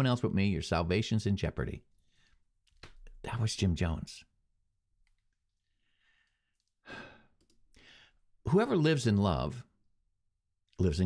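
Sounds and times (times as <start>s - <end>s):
man breathing: 1.9s - 2.5s, 5.6s - 8.3s.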